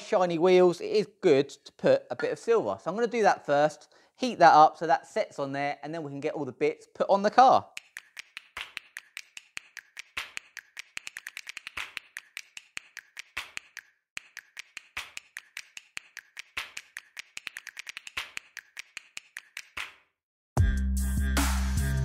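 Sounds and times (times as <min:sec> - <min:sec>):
loud music: 0:20.6 - 0:22.0.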